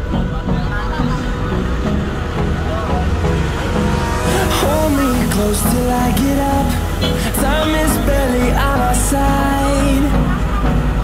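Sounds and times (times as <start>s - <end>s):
song playing: 0.0s - 11.0s
vehicle rumble from inside cabin: 0.0s - 11.0s.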